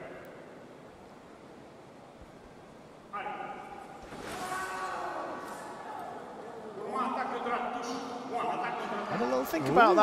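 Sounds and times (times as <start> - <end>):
sports hall ambience hiss: 0.0 - 10.0.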